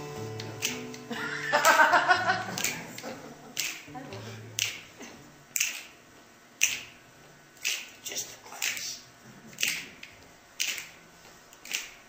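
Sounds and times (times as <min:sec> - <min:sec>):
finger snaps keeping a beat: 0:00.3 - 0:01.8, 0:02.5 - 0:03.0, 0:03.6 - 0:03.9, 0:04.6 - 0:04.8.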